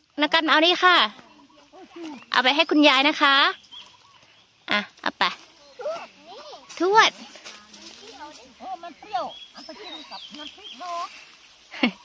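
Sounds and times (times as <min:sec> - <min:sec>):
quiet talking voices: 0:00.2 - 0:12.0.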